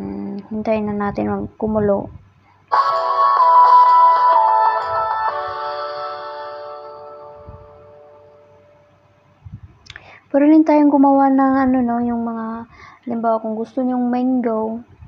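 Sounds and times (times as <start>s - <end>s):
bright chime-like jingle: 2.7s - 8.8s.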